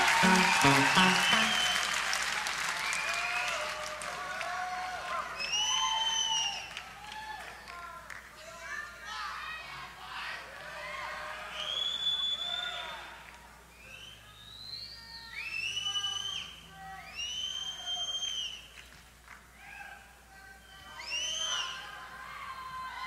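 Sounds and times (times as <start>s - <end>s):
crowd voices: 0.0s - 1.9s
audience cheering: 0.0s - 6.7s
high whistles: 17.1s - 18.7s.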